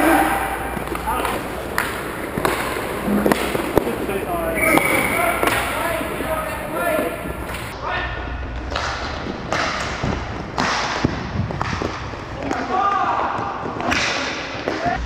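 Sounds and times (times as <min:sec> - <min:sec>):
sharp clacks of sticks and puck: 0:00.0 - 0:06.6, 0:08.6 - 0:15.0
players shouting: 0:00.0 - 0:07.8.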